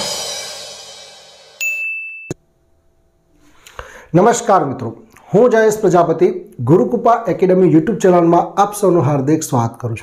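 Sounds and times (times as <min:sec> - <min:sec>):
cymbal crash: 0:00.0 - 0:01.6
bright ding: 0:01.6 - 0:02.4.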